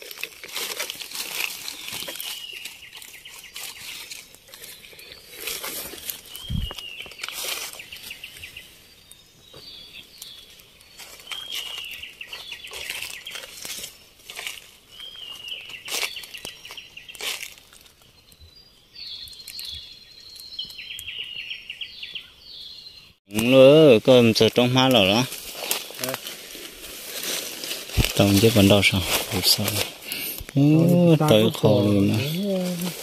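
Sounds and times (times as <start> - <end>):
footsteps crunching through dry leaves: 0.0 - 18.2, 24.4 - 30.4, 31.7 - 33.0
high chirping calls: 1.7 - 14.1, 14.9 - 23.8.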